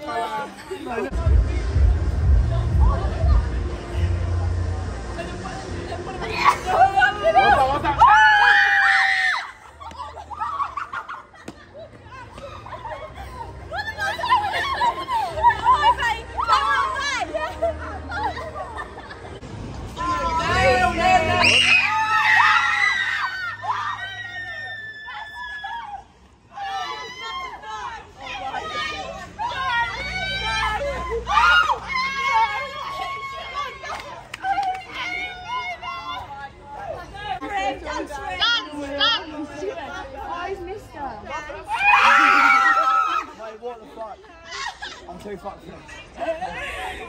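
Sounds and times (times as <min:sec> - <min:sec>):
young women screaming: 0:07.4 - 0:11.0, 0:21.3 - 0:28.7, 0:29.4 - 0:33.9, 0:41.6 - 0:43.4
young women laughing: 0:09.2 - 0:19.4, 0:42.0 - 0:45.2, 0:45.9 - 0:47.0.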